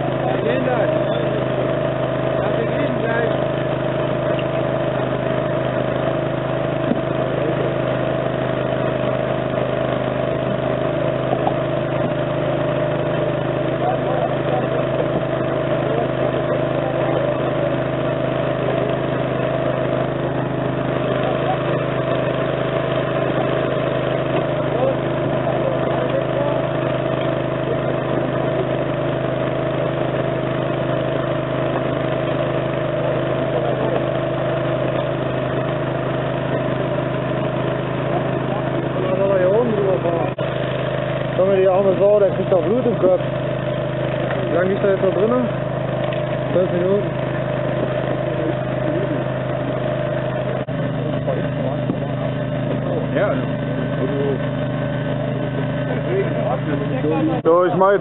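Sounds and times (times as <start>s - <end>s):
engine droning steadily: 0.0s - 58.0s.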